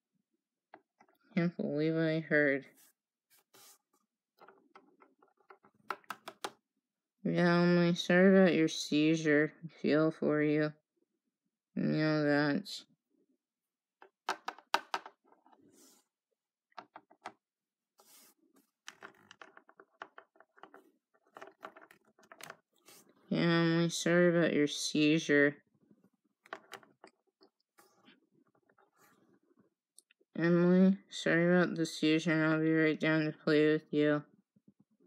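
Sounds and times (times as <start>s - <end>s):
plastic toys clicking on wood: 4.4s - 6.6s, 14.0s - 15.3s, 18.9s - 22.6s
plastic toys tapping on wood: 4.4s - 6.6s, 14.0s - 15.3s.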